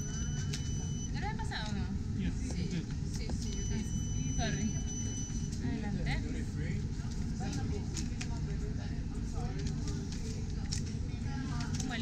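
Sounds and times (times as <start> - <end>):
steady electronic beep: 0.0 - 1.2, 3.5 - 5.6.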